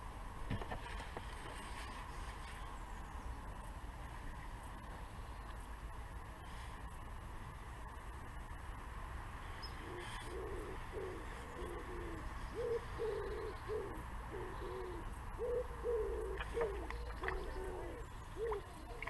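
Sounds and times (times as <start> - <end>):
pigeon cooing: 9.7 - 19.0.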